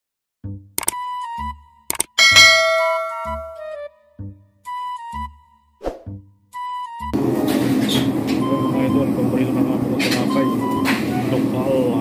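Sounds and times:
double mouse click: 0.8s - 1.0s, 1.9s - 2.1s
notification bell ding: 2.2s - 3.8s.

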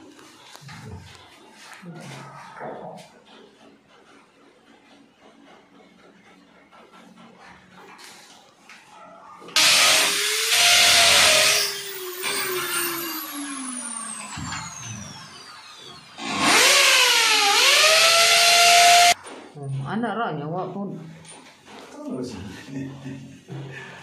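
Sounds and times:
power drill boring into wall: 9.6s - 19.2s.

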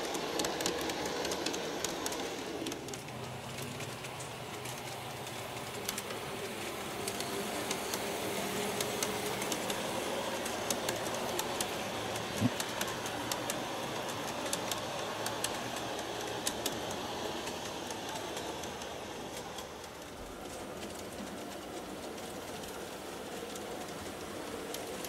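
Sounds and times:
model train rolling on track: 0.0s - 25.0s
wheels clicking over rail joints: 0.0s - 25.0s.

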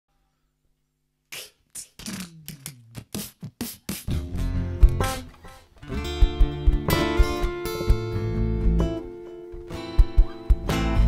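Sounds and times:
beatboxed snare hiss bursts: 1.3s - 5.3s, 10.0s - 11.0s.

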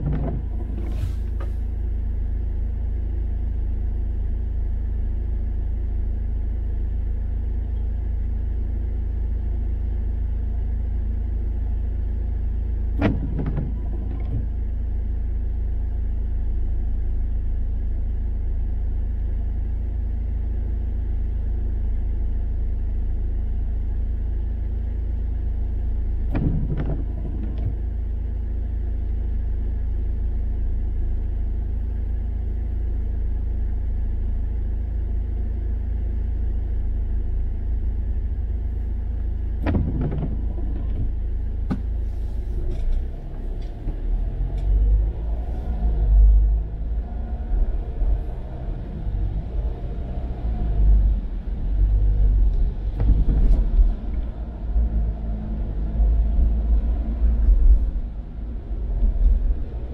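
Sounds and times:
car cabin low rumble: 0.0s - 59.9s
windscreen wipers sweeping: 39.6s - 59.9s.

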